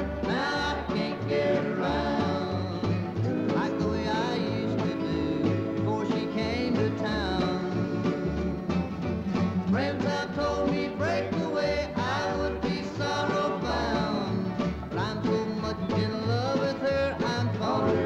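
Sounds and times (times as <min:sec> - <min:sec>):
bluegrass band playing country song: 0:00.0 - 0:18.0.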